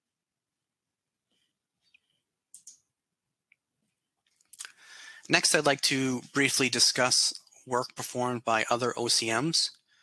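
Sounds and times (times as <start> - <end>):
person speaking: 4.4 - 9.9
faint mouth clicks: 4.5 - 4.8.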